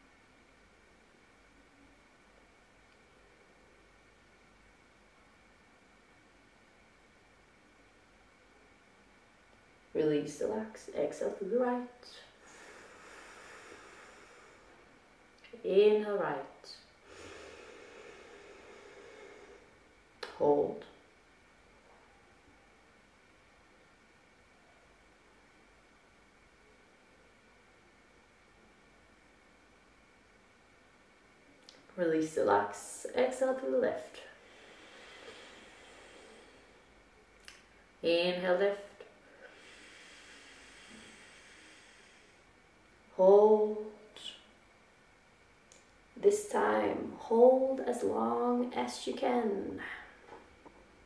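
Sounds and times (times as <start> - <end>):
room hiss: 0.0 - 51.0
soft nostril inhale: 12.4 - 14.9, 17.0 - 19.9, 34.3 - 37.0, 39.2 - 42.6.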